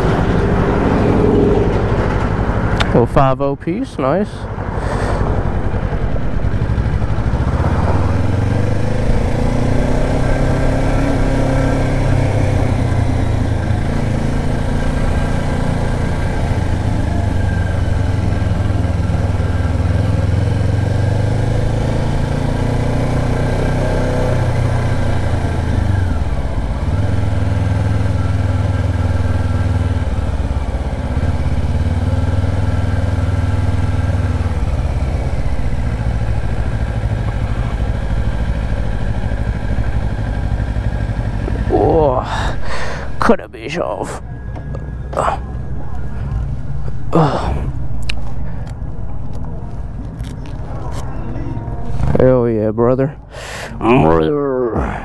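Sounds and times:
motorcycle engine running: 0.0 - 3.2, 3.8 - 43.3, 44.0 - 52.5.

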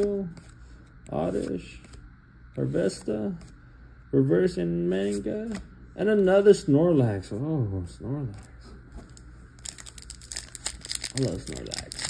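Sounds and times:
foil wrapper crinkling: 9.6 - 12.0.

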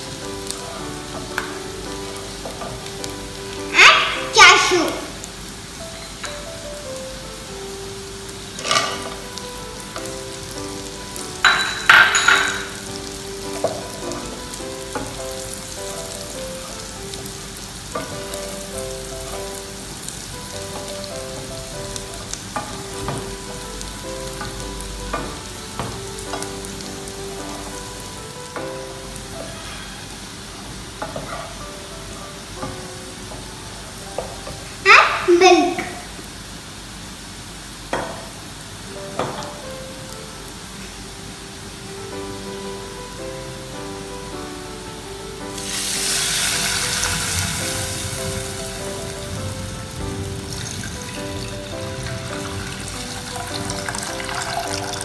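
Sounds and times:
shallots frying in a saucepan: 0.0 - 55.0.

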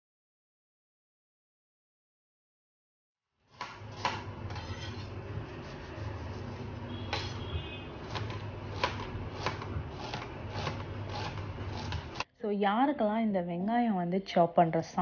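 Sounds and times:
knife striking steel board: 3.6 - 5.1, 7.0 - 12.2
low steady hum: 3.6 - 15.0.

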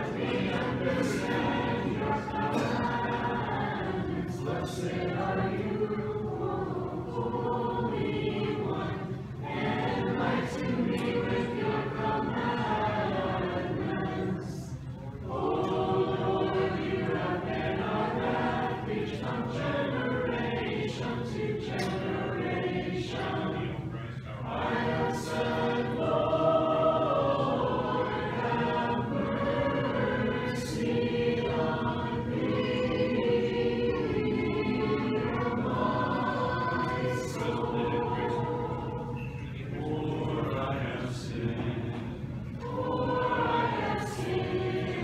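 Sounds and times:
choir chanting unaccompanied: 0.0 - 45.0.

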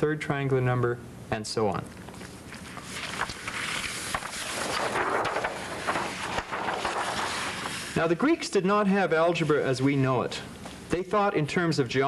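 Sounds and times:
card sheets rustling: 2.1 - 8.0.

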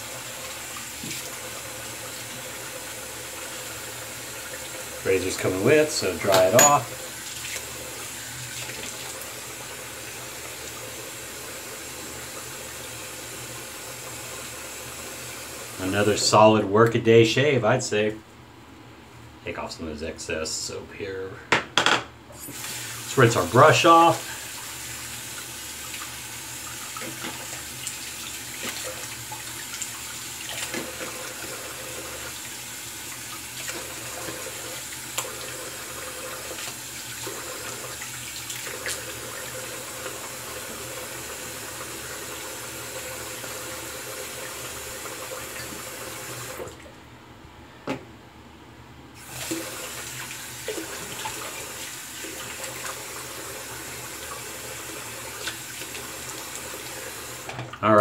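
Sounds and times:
sink tap running: 0.0 - 16.3, 22.4 - 46.8, 49.2 - 57.7
splashes and knocks while rinsing: 0.8 - 1.4, 26.7 - 31.6.

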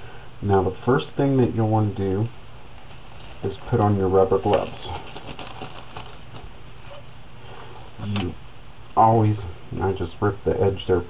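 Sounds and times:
rubber gloves rustling and snapping: 2.8 - 7.1.

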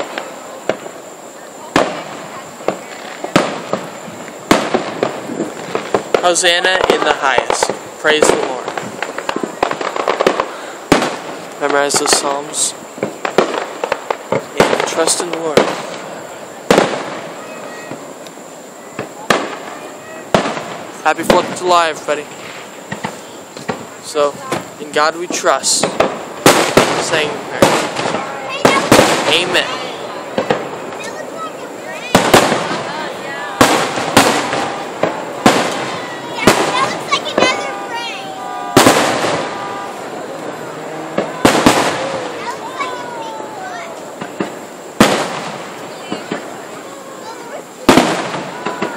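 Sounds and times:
fireworks booming with echo: 0.0 - 48.9
small firework pop: 22.4 - 24.7.

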